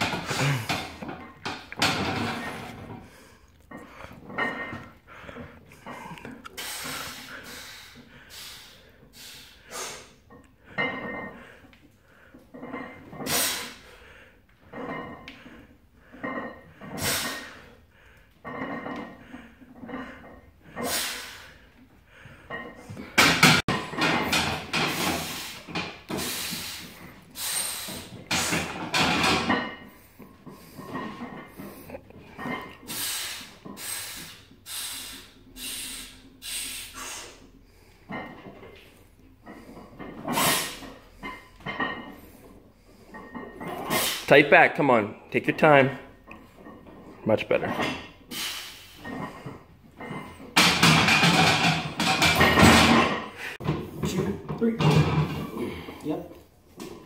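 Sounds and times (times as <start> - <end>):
forceful breathing: 2.3 - 12.5.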